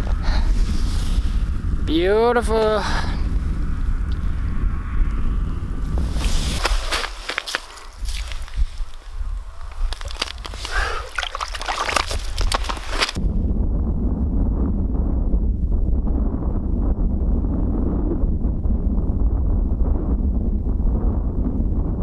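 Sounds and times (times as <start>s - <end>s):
wind rumble on microphone: 0.0s - 22.0s
water sloshing and splashing: 6.2s - 13.2s.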